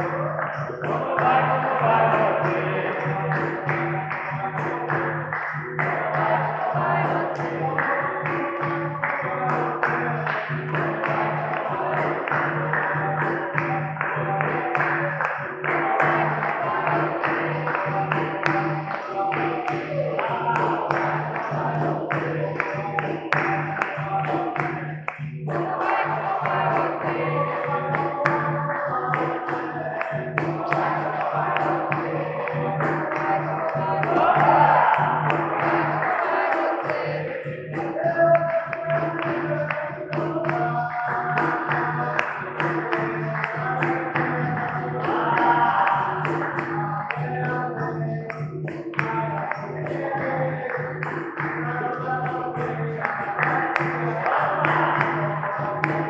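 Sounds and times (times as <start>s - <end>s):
group singing: 0.0s - 56.0s
hand drum rhythm: 0.0s - 56.0s
people hand-clapping: 0.0s - 56.0s.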